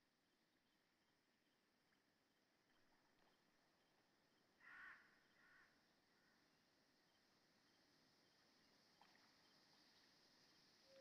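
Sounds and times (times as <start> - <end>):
faint animal calls: 4.6 - 5.7.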